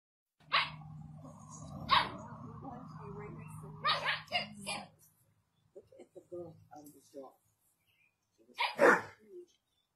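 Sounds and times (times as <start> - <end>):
puppy barking: 0.5 - 0.8, 1.8 - 2.2, 3.8 - 4.5, 8.6 - 9.2
large dog barking: 8.7 - 9.2.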